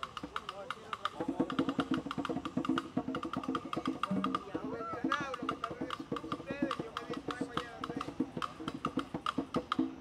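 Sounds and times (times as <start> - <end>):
conga drums: 0.0 - 10.0.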